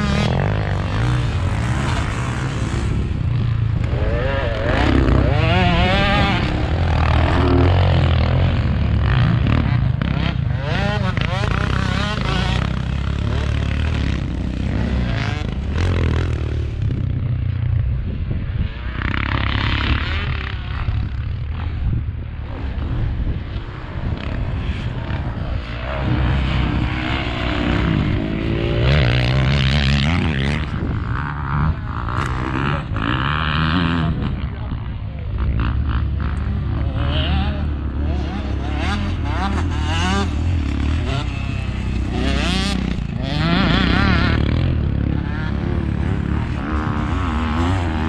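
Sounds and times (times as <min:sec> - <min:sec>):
dirt bike engines revving: 0:00.0 - 0:48.0.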